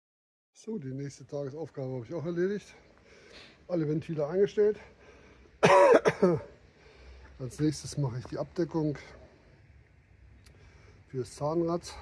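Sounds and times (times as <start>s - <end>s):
man coughing: 5.6s - 6.6s.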